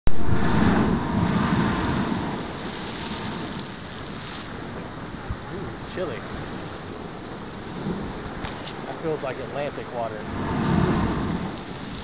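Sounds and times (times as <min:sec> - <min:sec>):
sea blowhole rushing: 0:00.1 - 0:12.0.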